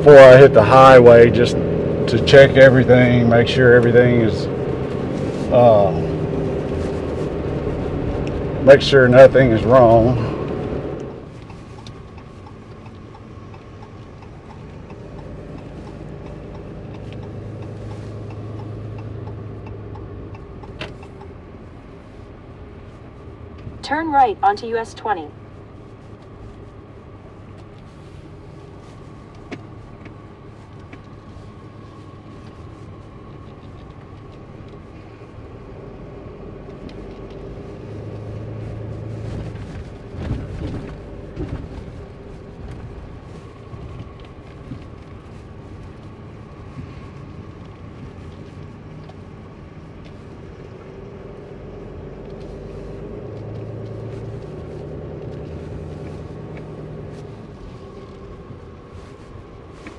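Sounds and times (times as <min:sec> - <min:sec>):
road noise: 0:00.0 - 0:59.9
truck engine running: 0:00.0 - 0:59.9.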